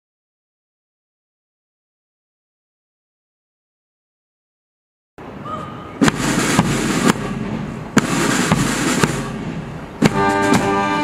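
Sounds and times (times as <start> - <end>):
louder drum beat: 6.0 - 11.0
snare drum rattle: 6.0 - 11.0.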